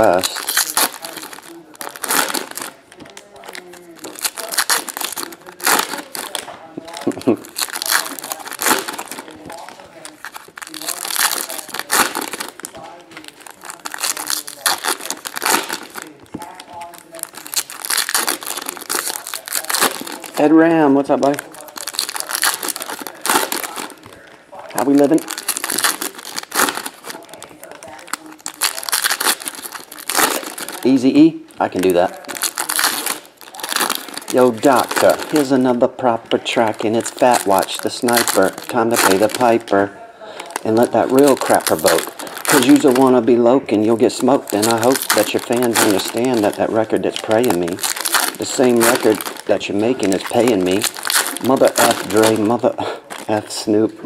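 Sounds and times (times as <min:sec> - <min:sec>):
card wrappers crinkling and tearing: 0:00.0 - 0:54.0.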